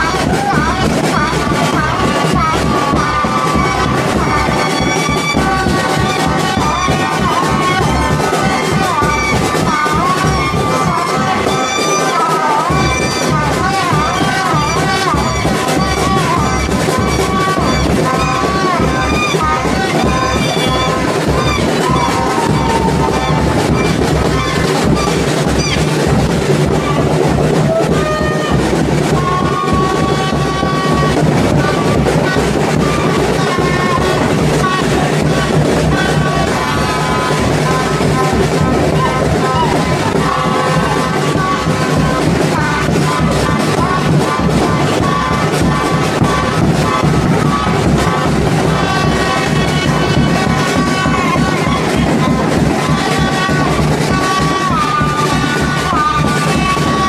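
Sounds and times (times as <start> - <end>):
crowd clapping: 0.0 - 57.0
crowd singing and shouting: 0.0 - 57.0
drums and plastic horns playing: 0.0 - 57.0.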